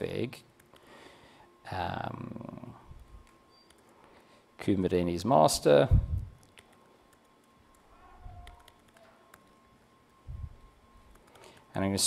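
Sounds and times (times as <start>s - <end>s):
laptop keyboard typing: 3.2s - 4.0s, 6.4s - 10.2s, 11.0s - 11.8s.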